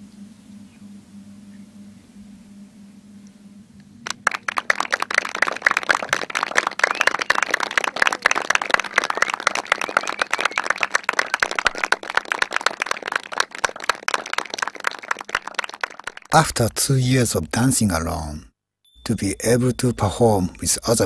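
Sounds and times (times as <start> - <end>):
audience applauding: 4.0 - 18.3, 19.1 - 21.0.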